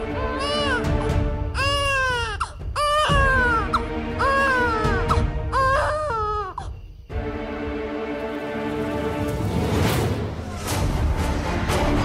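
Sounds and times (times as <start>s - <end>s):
baby crying: 0.0s - 6.8s
background music with held notes: 0.0s - 12.0s.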